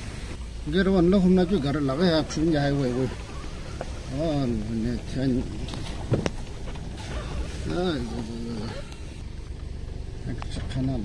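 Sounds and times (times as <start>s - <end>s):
vehicle rumble on dirt road: 0.0s - 11.0s.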